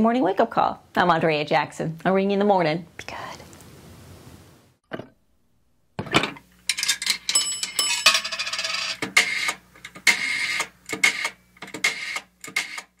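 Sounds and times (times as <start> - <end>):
old telephone bell ringing: 6.7 - 9.0.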